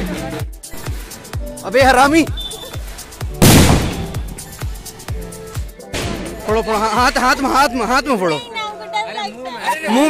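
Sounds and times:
music with steady beat: 0.0 - 7.2
firecracker bang: 3.4 - 4.8.

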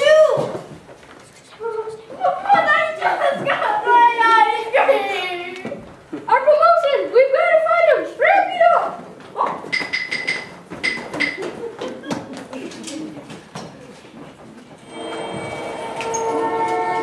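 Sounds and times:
child shouting: 2.2 - 5.6
footsteps on stage: 9.0 - 16.8
short high tones: 14.8 - 17.0.

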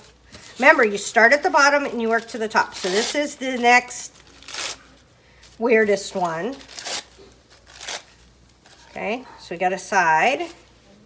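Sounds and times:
tissue paper rustling: 0.0 - 9.1.

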